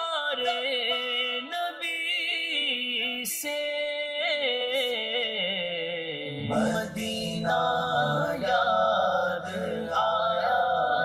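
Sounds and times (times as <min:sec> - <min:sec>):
person singing unaccompanied: 0:00.0 - 0:11.0.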